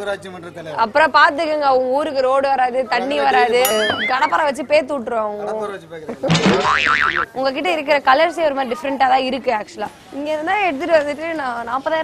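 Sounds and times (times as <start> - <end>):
woman speaking: 1.0 - 5.3
cartoon boing sound effect: 3.7 - 4.4, 6.3 - 7.3.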